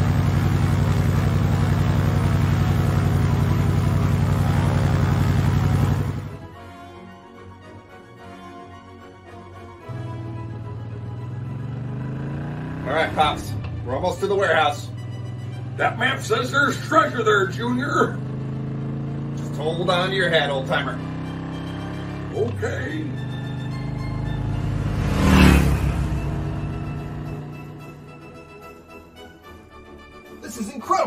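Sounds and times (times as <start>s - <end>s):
motorcycle engine accelerating: 0.0s - 6.5s, 9.8s - 28.8s
background music: 4.8s - 31.0s
man speaking: 30.4s - 31.0s.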